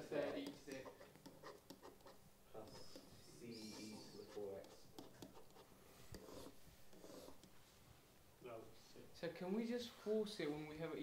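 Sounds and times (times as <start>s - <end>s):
stylus tapping and scratching: 0.0s - 7.6s.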